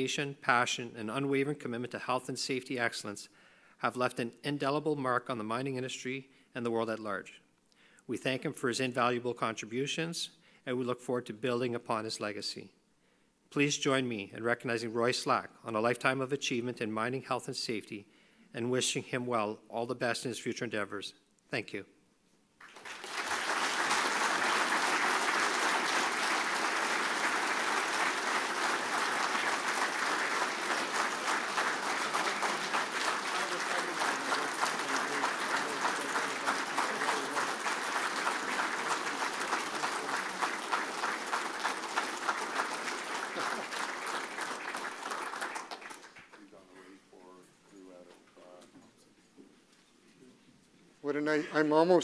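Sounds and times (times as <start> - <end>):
audience applauding: 22.6 - 46.5.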